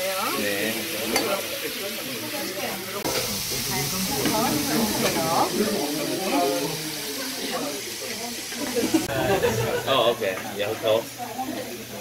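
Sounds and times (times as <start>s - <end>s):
meat sizzling on a grill pan: 0.0s - 12.0s.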